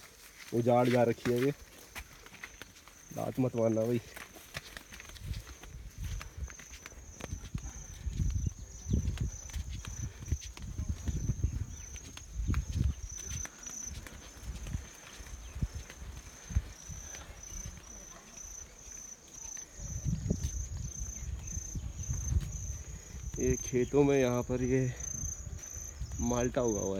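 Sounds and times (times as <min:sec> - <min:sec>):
flip-flop footsteps on path: 0:00.0 - 0:26.9
insects trilling: 0:01.5 - 0:26.9.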